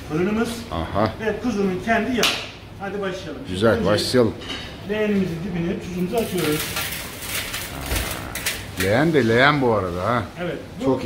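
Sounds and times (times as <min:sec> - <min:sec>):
salt grains pattering on metal: 0:06.0 - 0:09.8.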